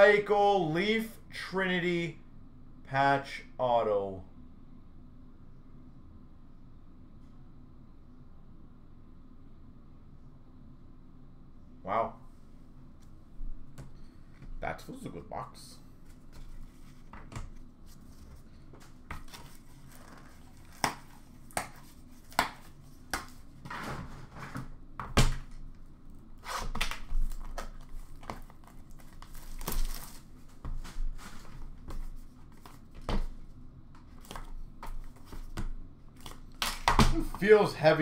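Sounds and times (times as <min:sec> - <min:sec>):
cardboard rustling and scraping: 0:15.9 - 0:24.7, 0:26.4 - 0:33.5.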